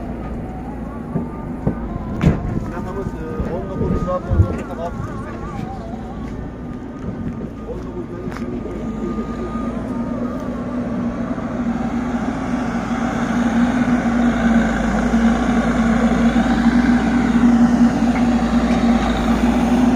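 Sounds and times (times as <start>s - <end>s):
heavy diesel engines humming: 0.0s - 19.9s.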